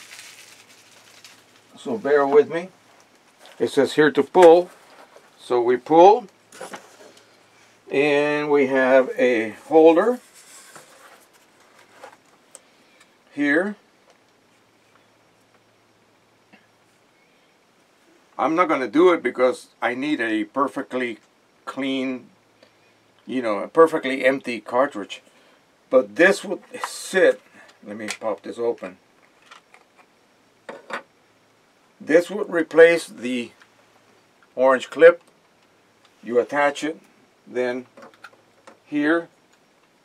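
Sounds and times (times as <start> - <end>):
packaging rustling: 0.0 - 1.8.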